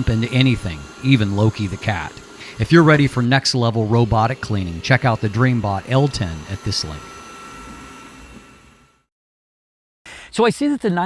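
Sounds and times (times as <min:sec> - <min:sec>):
robot vacuum whirring: 0:00.0 - 0:09.1.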